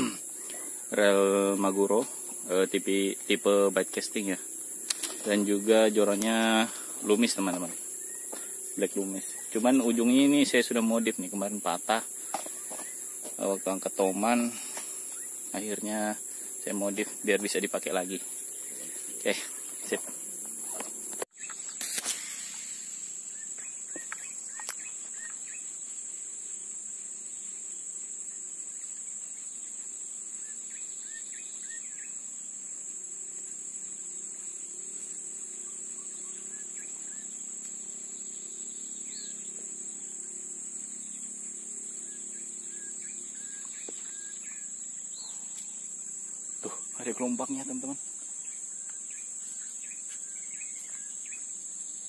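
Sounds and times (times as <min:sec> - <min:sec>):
high-pitched insect drone: 0:00.0 - 0:52.0
faint bird chirps: 0:21.3 - 0:25.7, 0:30.4 - 0:32.2, 0:42.0 - 0:52.0.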